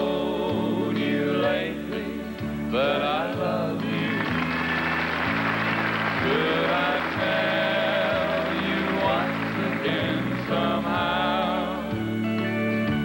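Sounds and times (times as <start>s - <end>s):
male vocal quartet singing harmony: 0.0s - 12.4s
sustained chords: 0.0s - 13.0s.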